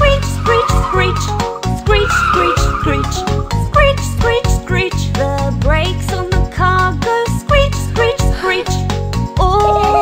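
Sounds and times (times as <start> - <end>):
bouncy children's song: 0.0 - 10.0
cartoon tire screech: 0.1 - 3.6
person singing: 9.4 - 10.0.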